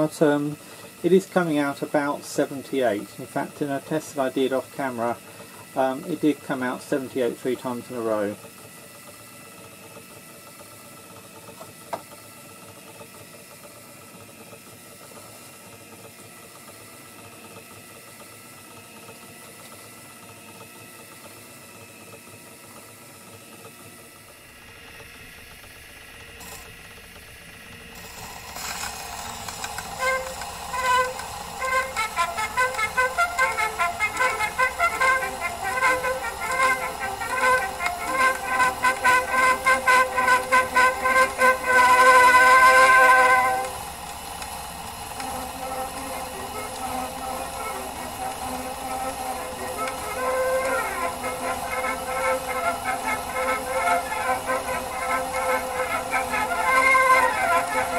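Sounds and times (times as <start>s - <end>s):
gramophone record music: 0.0s - 8.4s, 28.0s - 57.9s
turntable motor hum: 0.0s - 21.4s, 23.6s - 57.9s.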